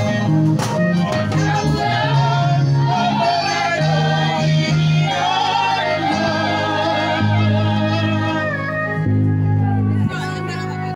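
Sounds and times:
choir singing: 0.0s - 0.4s, 1.0s - 9.0s.

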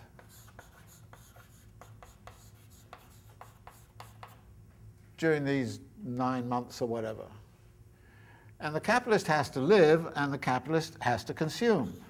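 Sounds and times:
chalk scratching on blackboard: 0.0s - 4.4s.

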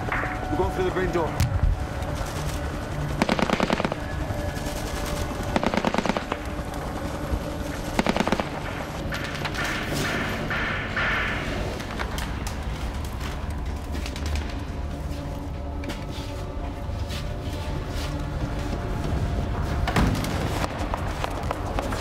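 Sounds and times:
automatic gunfire bursts: 3.2s - 4.2s, 4.8s - 6.5s, 8.0s - 8.6s.

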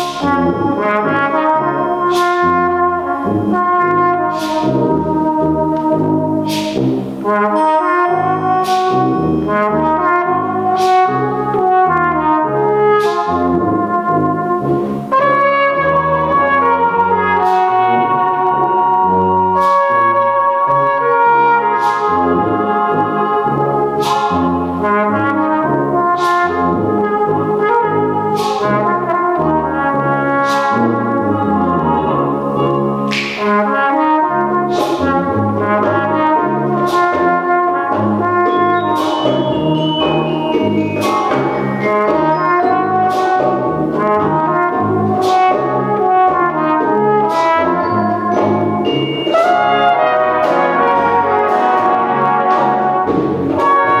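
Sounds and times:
brass band playing: 0.0s - 54.0s
flugelhorn melody: 0.0s - 54.0s
sharp percussion stroke: 0.0s - 54.0s.

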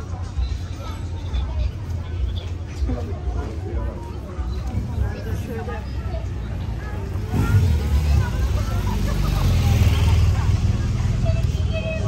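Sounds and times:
street crowd chatter: 0.0s - 12.0s.

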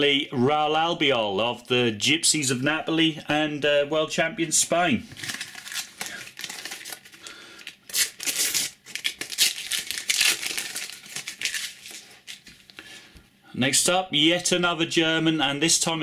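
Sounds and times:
paper packet tearing: 5.1s - 12.5s
paper wrapper crinkling: 5.1s - 12.8s.

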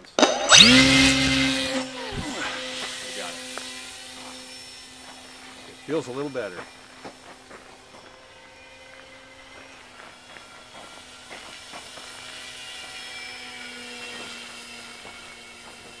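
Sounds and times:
model plane motor whining: 0.0s - 16.0s.

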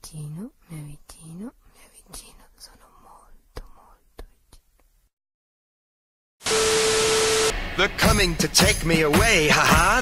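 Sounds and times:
person whispering: 0.0s - 4.7s.

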